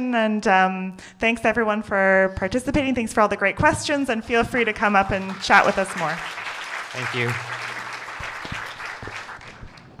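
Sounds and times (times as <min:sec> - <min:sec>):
audience applauding: 0:04.5 - 0:10.0.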